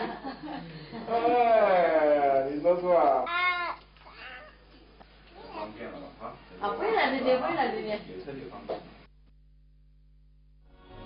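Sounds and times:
small child vocalizing: 3.3s - 5.8s.

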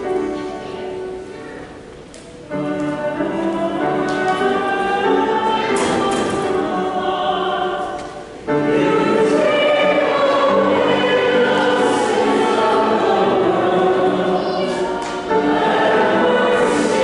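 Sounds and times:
choir singing a hymn: 2.5s - 17.0s.

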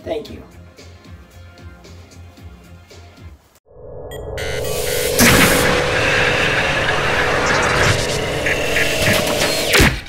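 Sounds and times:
rumbling whoosh: 3.7s - 9.7s
fast downward sweep: 3.7s - 9.8s
held electronic tone: 3.7s - 9.8s.

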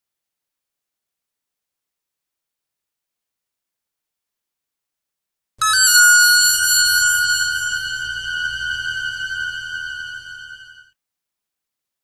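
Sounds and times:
high-pitched electronic tone: 5.6s - 10.9s.

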